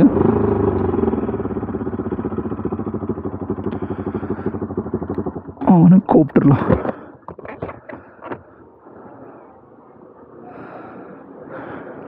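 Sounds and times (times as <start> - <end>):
motorcycle engine at low revs: 0.0 - 8.8.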